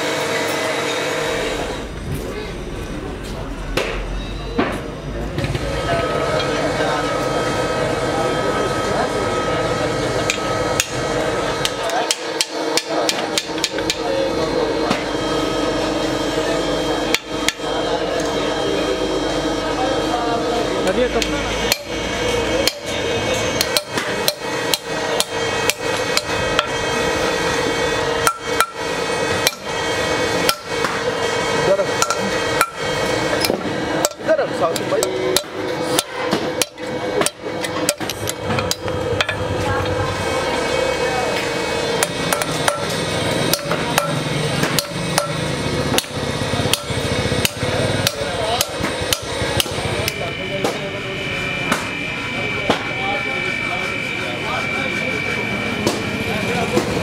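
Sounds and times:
steady background hum: 0:00.0 - 0:57.0
hammer striking metal: 0:10.2 - 0:15.2, 0:17.0 - 0:17.7, 0:21.2 - 0:39.5, 0:41.4 - 0:51.0
sledgehammer striking metal: 0:28.2 - 0:29.8, 0:30.4 - 0:31.1, 0:32.0 - 0:34.3, 0:42.0 - 0:49.8.

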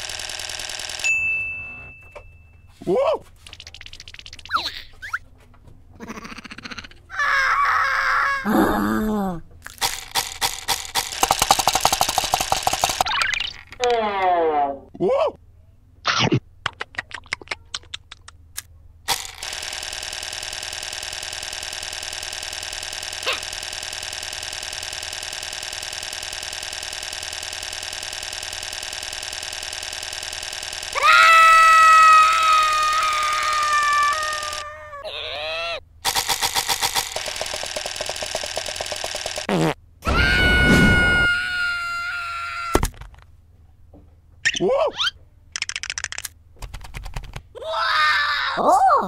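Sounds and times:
gliding cartoon cry: 0:06.0 - 0:09.4, 0:31.0 - 0:35.8, 0:40.0 - 0:42.8
rapid rattle: 0:09.8 - 0:13.0, 0:36.0 - 0:39.5
steady buzzing tone: 0:19.1 - 0:31.0, 0:36.0 - 0:39.7.

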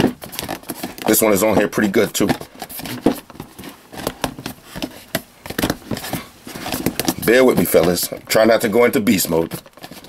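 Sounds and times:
cardboard scuffing and clicking: 0:00.0 - 0:08.5.

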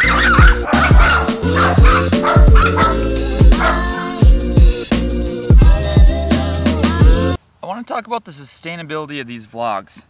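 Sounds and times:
small dog barking: 0:00.0 - 0:03.0, 0:03.6 - 0:03.9
music with heavy beat: 0:00.0 - 0:07.2.

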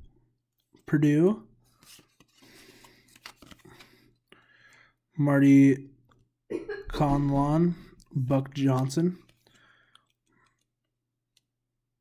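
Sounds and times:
cards sliding: 0:01.7 - 0:04.0.

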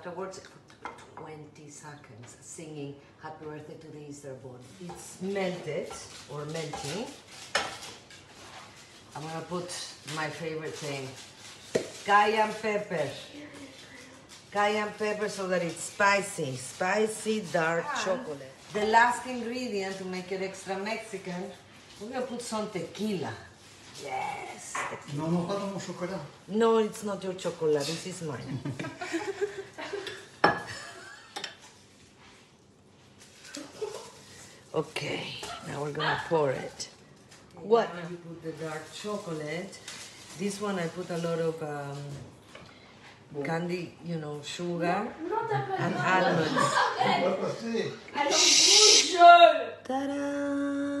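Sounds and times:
spatula clinking and scraping bowl: 0:04.8 - 0:09.8.

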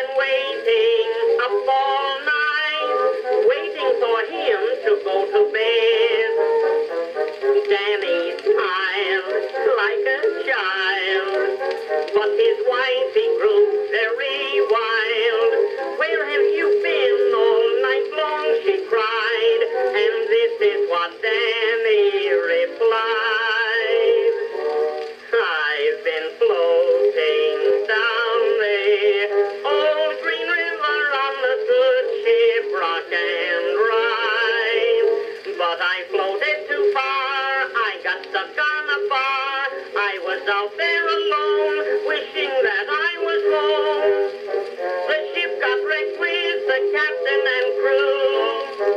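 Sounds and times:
man singing: 0:00.0 - 0:06.6, 0:07.4 - 0:24.6, 0:25.2 - 0:48.9
orchestra: 0:00.0 - 0:48.9
thin phonograph cylinder music: 0:00.0 - 0:48.9.

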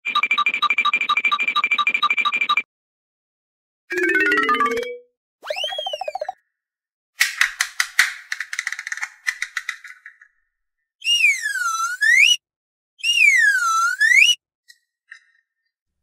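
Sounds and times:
swooping cartoon sound effects: 0:03.9 - 0:06.4
plastic toy clicking and rattling: 0:07.2 - 0:10.3.

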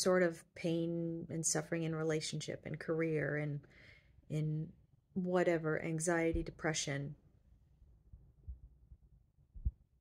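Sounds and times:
soft low thumps: 0:06.2 - 0:06.6, 0:08.1 - 0:10.0.

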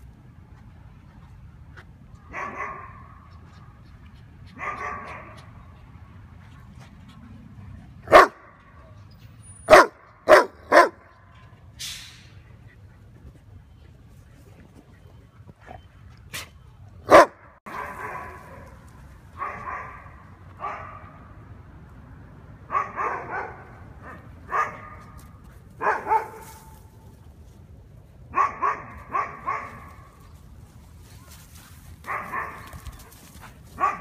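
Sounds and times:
dog barking: 0:02.3 - 0:03.2, 0:04.6 - 0:05.4, 0:08.1 - 0:08.6, 0:09.7 - 0:11.1, 0:17.1 - 0:18.8, 0:19.4 - 0:21.1, 0:22.7 - 0:25.2, 0:25.8 - 0:26.7, 0:28.3 - 0:30.1, 0:32.0 - 0:32.7, 0:33.8 - 0:34.0.

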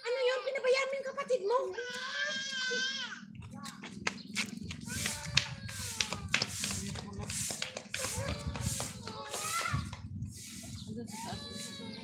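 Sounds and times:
faint background voices: 0:01.7 - 0:12.0.

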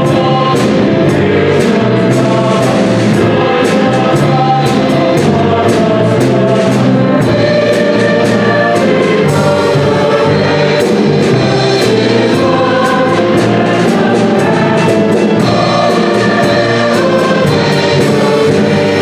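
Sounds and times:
drum kit with cymbals: 0:00.0 - 0:19.0
mixed choir singing: 0:00.0 - 0:19.0
piano: 0:00.0 - 0:19.0
violin: 0:00.0 - 0:19.0.

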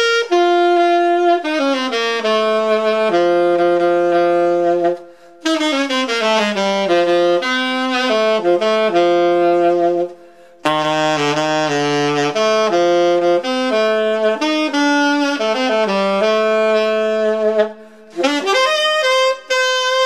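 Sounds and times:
solo saxophone melody: 0:00.0 - 0:20.0.

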